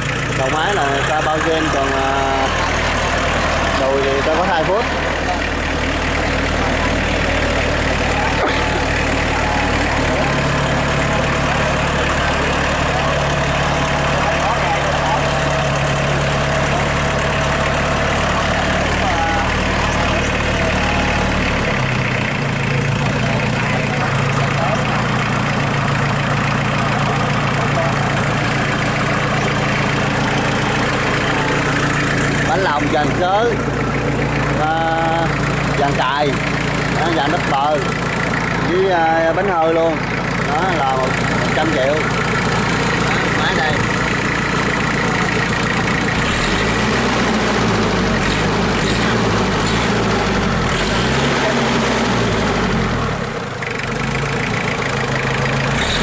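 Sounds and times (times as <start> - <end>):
diesel tractor engine idling: 0.0 - 56.0.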